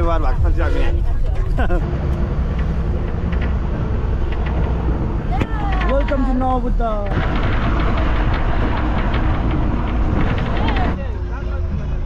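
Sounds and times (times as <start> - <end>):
bus engine and tyres rumbling: 0.0 - 12.0.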